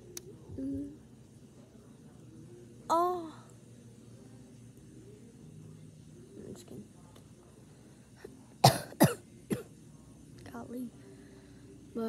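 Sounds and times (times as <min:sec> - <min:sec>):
boy coughing: 0:08.6 - 0:09.7.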